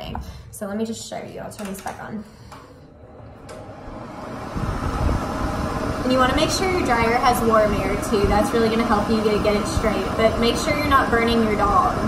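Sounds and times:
pet grooming dryer blowing air: 3.5s - 12.0s.

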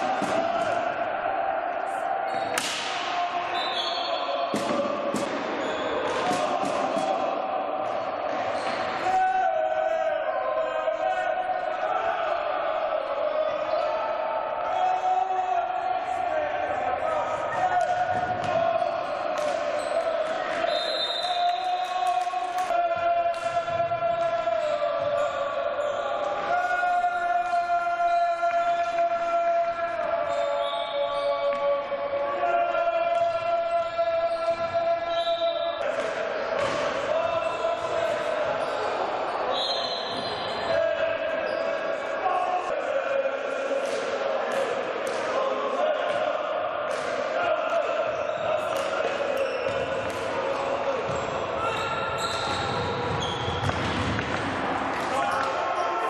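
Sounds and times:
crowd chanting: 0.0s - 56.0s.

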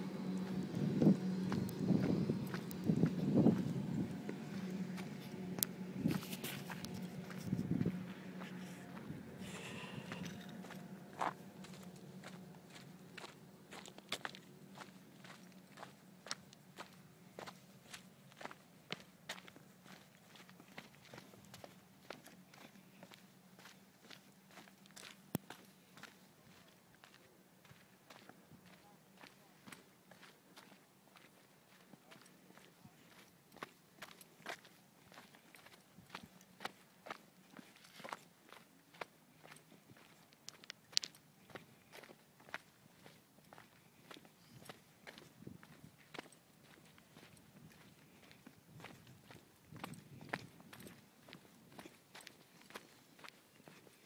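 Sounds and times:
footsteps on stony path: 0.2s - 54.0s.

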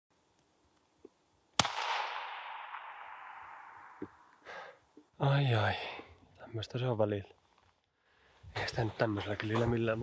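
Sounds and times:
rifle shot with echo: 1.6s - 4.3s.

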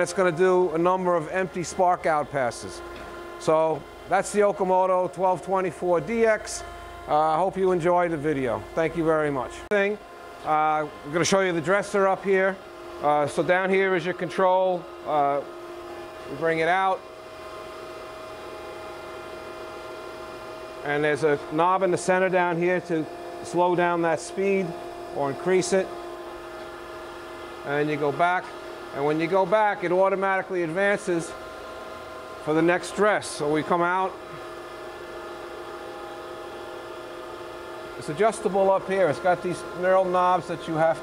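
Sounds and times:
grinder electric hum: 0.0s - 41.0s.

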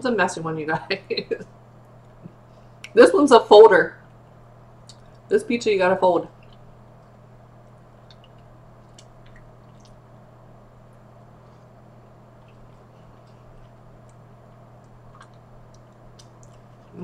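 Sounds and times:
low electrical hum: 0.0s - 17.0s
wet mouth clicks: 4.8s - 5.2s, 8.0s - 10.0s, 14.8s - 16.7s
person chewing pizza: 10.9s - 17.0s.

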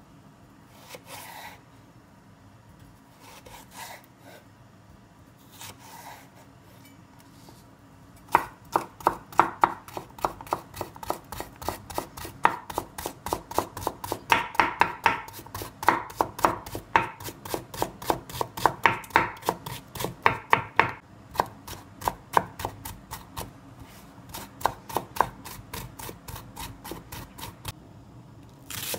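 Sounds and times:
knife chopping on wooden board: 8.3s - 23.5s, 24.3s - 27.6s.

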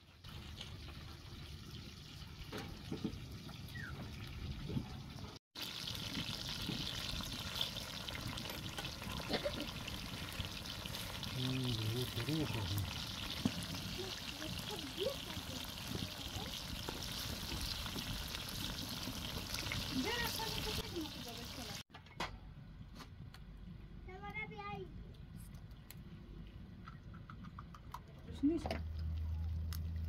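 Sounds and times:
vegetables sizzling in a pan: 5.6s - 21.8s.

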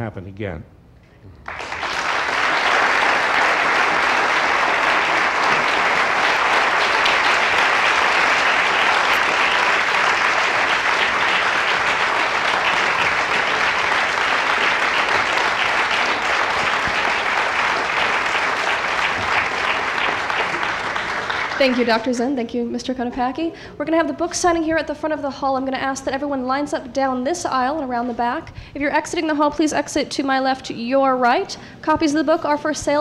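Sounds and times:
audience applauding: 1.4s - 22.3s.

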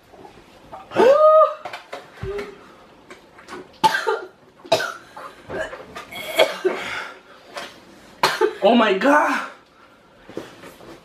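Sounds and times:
person wailing: 0.9s - 1.6s
person coughing: 3.8s - 7.0s, 8.2s - 8.6s.

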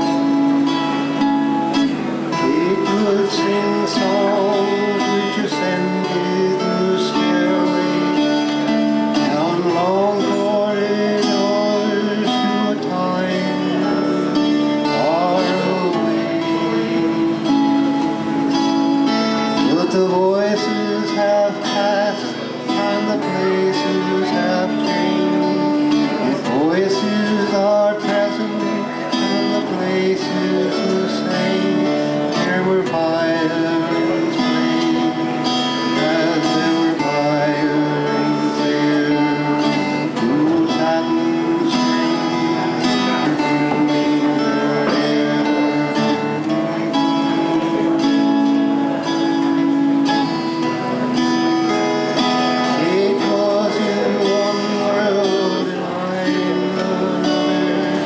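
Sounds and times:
acoustic guitar chords: 0.0s - 58.0s
man singing: 0.0s - 58.0s.

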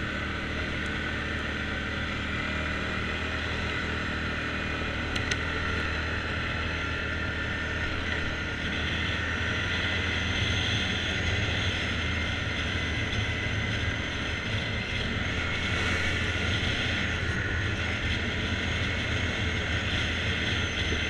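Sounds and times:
atv engine running: 0.0s - 21.0s.

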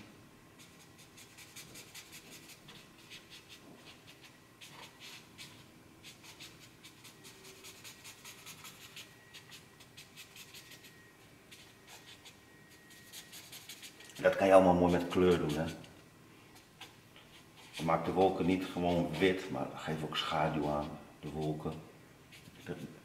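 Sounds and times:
pen scratching on paper: 0.6s - 10.9s, 11.5s - 15.9s.

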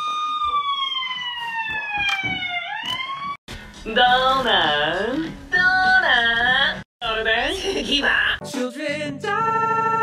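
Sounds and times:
siren wailing: 0.0s - 3.4s.

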